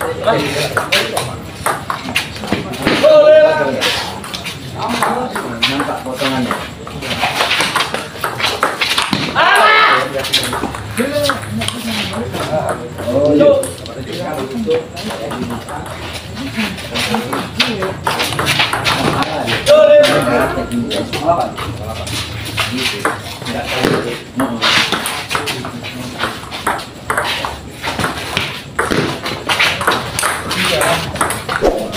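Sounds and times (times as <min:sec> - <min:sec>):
people's voices and calls: 0:00.0 - 0:31.9.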